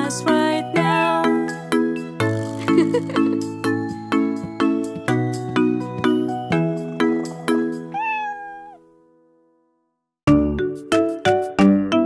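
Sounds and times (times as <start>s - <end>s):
cartoon cat meowing: 7.9s - 8.8s
children's song with plucked notes: 10.3s - 12.0s.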